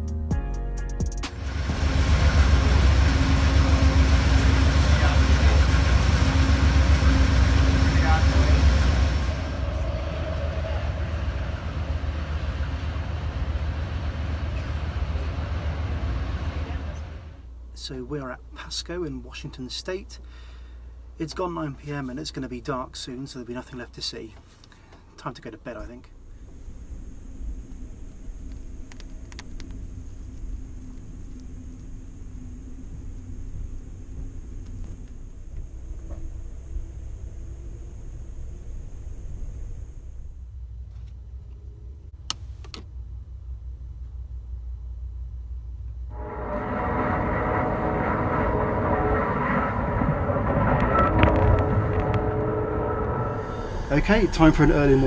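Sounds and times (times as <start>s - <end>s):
steady sound with held tones: 1.2s - 18.7s, 45.9s - 55.0s
train rumble: 1.2s - 42.4s, 43.0s - 55.0s.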